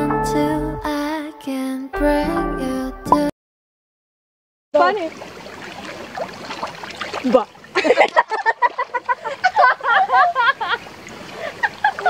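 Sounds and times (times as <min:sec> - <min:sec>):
water splashing in a pool: 0:04.8 - 0:12.0.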